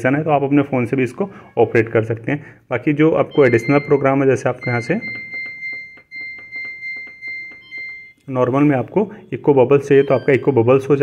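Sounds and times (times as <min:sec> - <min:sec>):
washing machine control panel beeping: 0:03.3 - 0:11.0.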